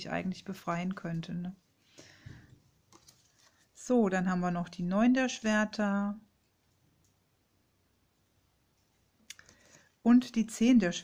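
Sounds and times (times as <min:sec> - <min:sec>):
card clicks and rustling: 0:02.9 - 0:03.6.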